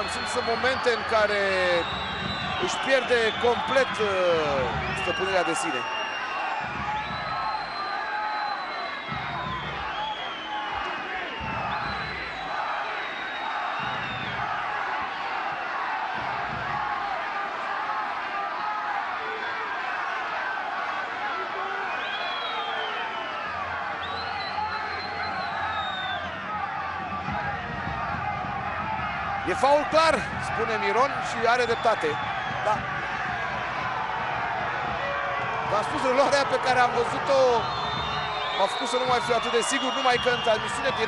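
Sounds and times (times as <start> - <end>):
crowd shouting and chanting: 0.0 - 41.0
long high whistles: 7.0 - 14.4.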